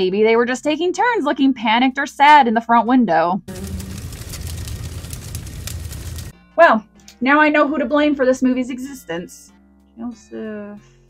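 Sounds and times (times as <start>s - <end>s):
large fire rumbling: 3.5s - 6.3s
fire crackling: 3.5s - 6.4s.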